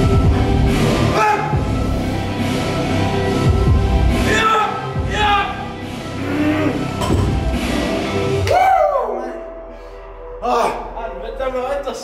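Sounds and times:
men yelling excitedly: 4.2 - 5.8.

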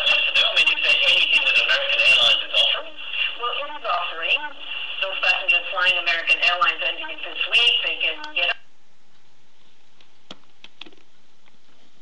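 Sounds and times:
news speech through tv speaker: 0.0 - 8.6.

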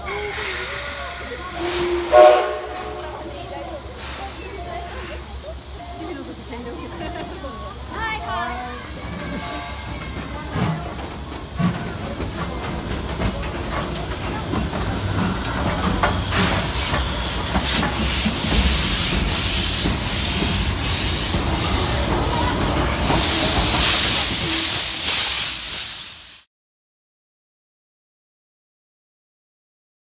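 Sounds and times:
hissing steam: 0.0 - 8.1, 8.7 - 26.5
steam locomotive rumble: 0.0 - 26.5
locomotive puffs and knocks: 9.4 - 25.2.

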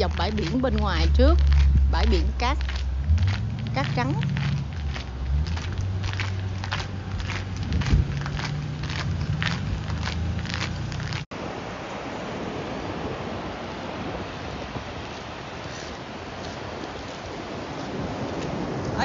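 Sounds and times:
footsteps on pavement: 0.0 - 11.3
wind on microphone: 0.0 - 19.0.

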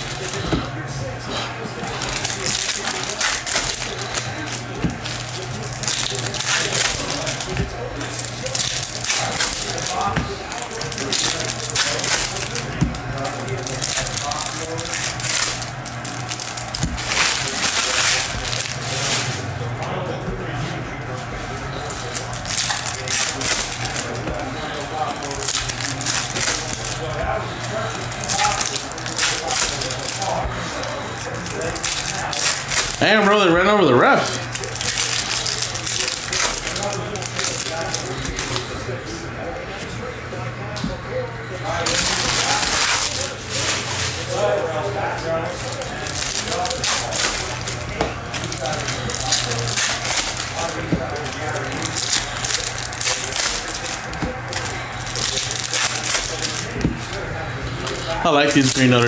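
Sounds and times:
foil wrappers crinkling: 0.0 - 59.0.

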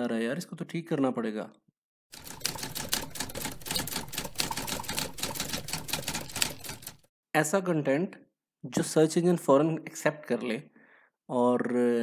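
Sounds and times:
typewriter key clicks: 2.8 - 7.0.

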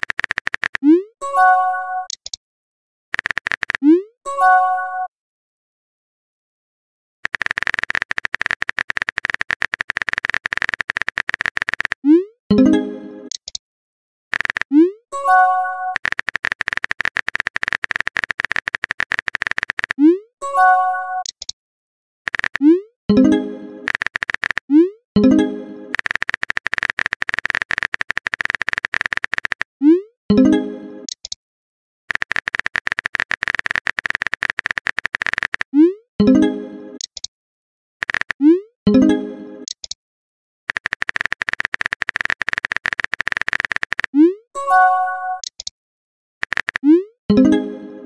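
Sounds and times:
phone keyboard clicks: 0.0 - 0.9, 2.1 - 2.4, 3.2 - 3.9, 7.2 - 12.0, 13.3 - 13.6, 14.3 - 14.8, 16.0 - 20.0, 21.2 - 21.6, 22.3 - 22.7, 23.9 - 24.7, 25.9 - 29.7, 31.1 - 31.4, 32.1 - 35.7, 37.0 - 37.3, 38.0 - 38.4, 39.6 - 40.0, 40.7 - 44.2, 45.4 - 45.7, 46.4 - 46.9.

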